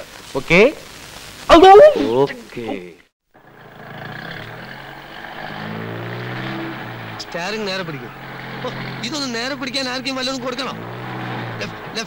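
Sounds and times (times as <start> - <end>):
car engine accelerating: 3.4 - 12.0.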